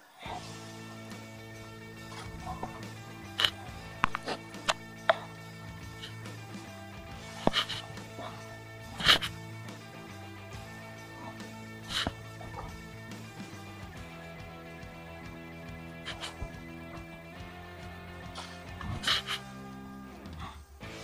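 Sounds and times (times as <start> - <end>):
sustained background music: 0.0 - 21.0.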